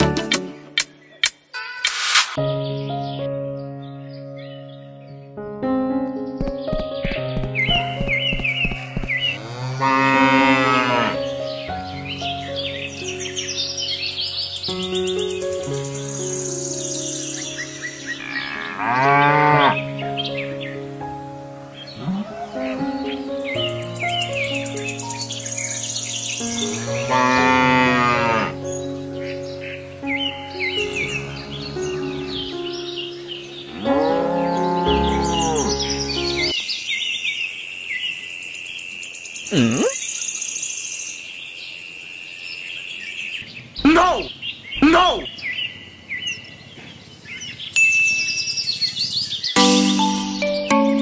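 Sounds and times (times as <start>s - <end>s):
light background music: 0.0s - 36.6s, 49.6s - 51.0s
birds chirping and whistling: 6.3s - 20.9s, 21.7s - 38.2s, 43.0s - 51.0s
cow mooing: 9.3s - 11.3s, 18.2s - 19.8s, 22.0s - 22.8s, 26.7s - 28.6s, 33.7s - 36.0s.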